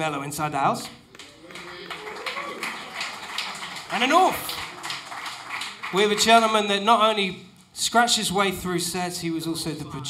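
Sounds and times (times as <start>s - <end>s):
audience clapping: 0.9s - 7.3s.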